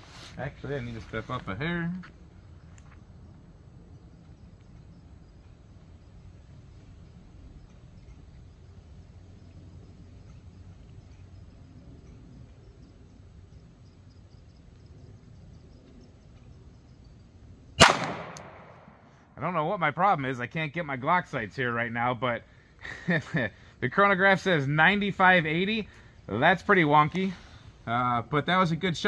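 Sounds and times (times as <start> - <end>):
faint background noise: 0.0 - 29.0
pistol shot with ringing tail: 17.8 - 19.1.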